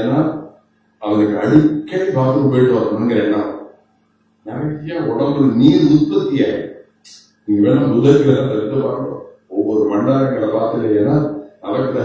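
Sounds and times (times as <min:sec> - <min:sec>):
man chanting: 0:07.5 - 0:12.0.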